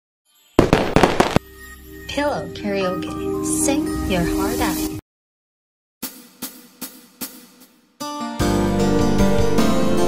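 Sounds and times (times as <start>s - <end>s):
sharp percussive hits: 0.6s - 1.5s.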